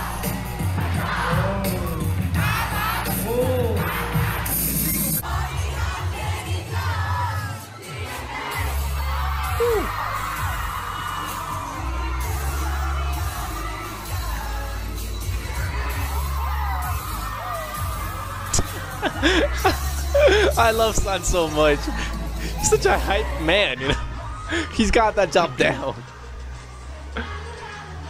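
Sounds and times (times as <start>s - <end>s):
pop music with heavy bass beat: 0.0s - 25.0s
crowd screaming and singing along: 0.0s - 28.0s.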